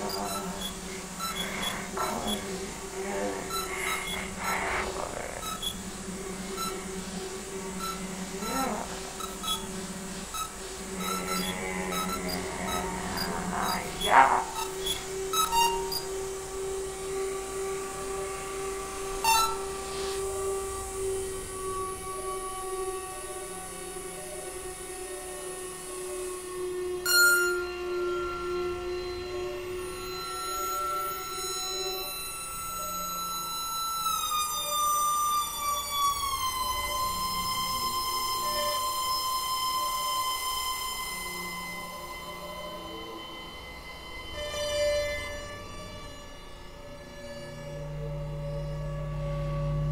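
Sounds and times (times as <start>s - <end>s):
electronic drone music: 0.0s - 26.4s, 36.0s - 49.9s.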